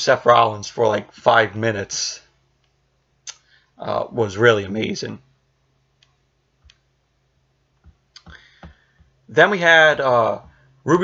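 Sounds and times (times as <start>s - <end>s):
person talking: 0.0s - 2.3s, 3.8s - 5.3s, 9.3s - 11.0s
faint isolated clicks: 6.0s - 6.9s.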